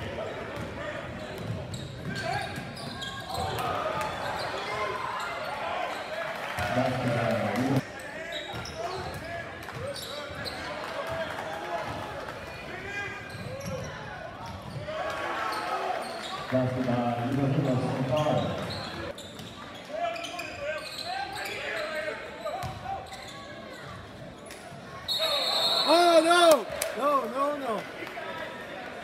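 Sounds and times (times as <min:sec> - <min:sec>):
spectators talking: 0:17.4 - 0:29.0
high whistle blast: 0:25.1 - 0:26.3.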